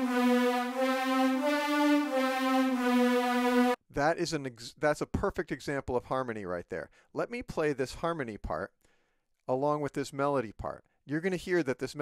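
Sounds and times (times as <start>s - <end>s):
synth strings sustained notes: 0.0s - 3.8s.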